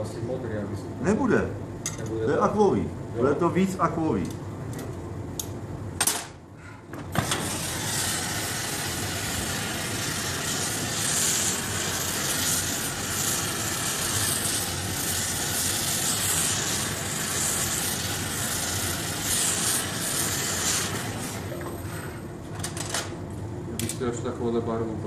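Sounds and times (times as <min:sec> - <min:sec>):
gas torch flame hissing: 0:07.0 - 0:22.5.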